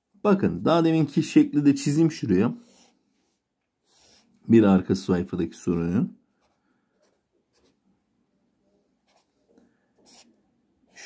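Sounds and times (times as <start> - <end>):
felt-tip pen drawing on paper: 2.6 - 4.4, 6.4 - 7.8, 9.0 - 9.4, 10.0 - 11.0.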